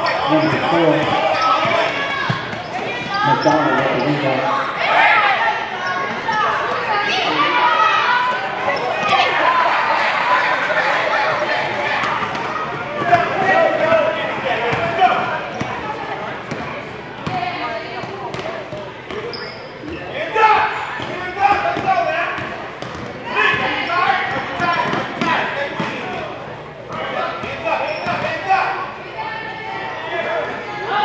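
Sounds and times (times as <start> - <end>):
voices shouting: 0.0 - 16.2.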